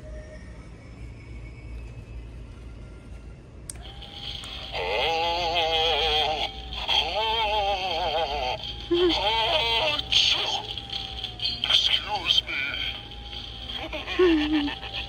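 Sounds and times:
steady electronic tone: 0:00.0 - 0:15.0
synthetic wavering singing: 0:03.7 - 0:15.0.

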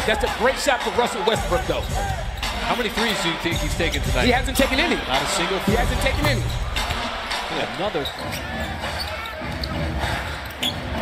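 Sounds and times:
murmur of indoor crowd: 0:00.0 - 0:11.0.

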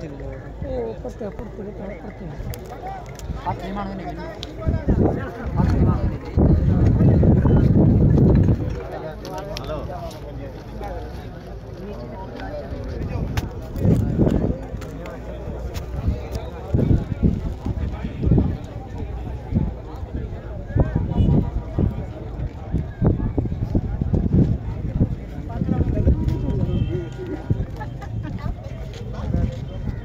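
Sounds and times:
crowd voices outdoors: 0:00.0 - 0:30.0
people talking: 0:00.0 - 0:30.0
wind buffeting on microphone: 0:02.4 - 0:10.1, 0:12.5 - 0:30.0.

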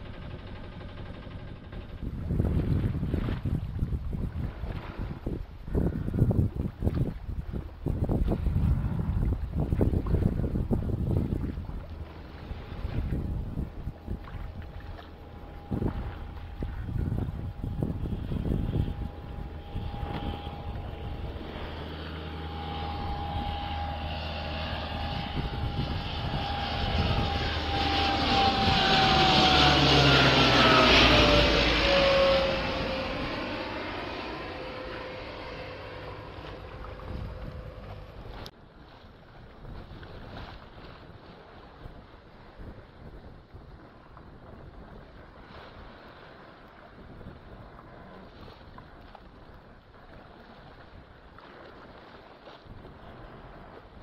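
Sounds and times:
propeller aircraft flying over: 0:00.0 - 0:54.0
water noise: 0:00.0 - 0:54.0
wind on microphone: 0:01.6 - 0:54.0.

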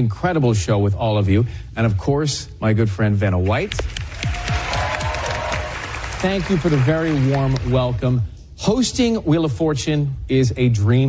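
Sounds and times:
studio audience applauding: 0:03.7 - 0:08.2.

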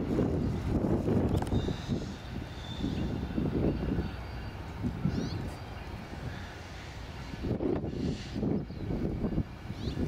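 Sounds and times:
distant train rumble: 0:00.0 - 0:10.0
wind buffeting microphone: 0:00.0 - 0:10.0.

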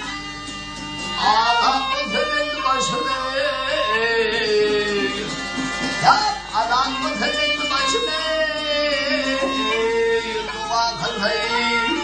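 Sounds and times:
plucked lute: 0:00.0 - 0:12.0
man singing folk song: 0:01.1 - 0:12.0.

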